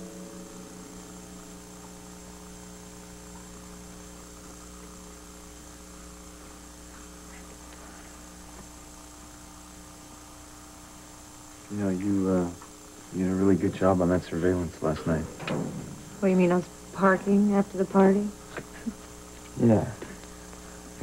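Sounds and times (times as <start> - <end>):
electrical mains hum: 0.0 - 21.0.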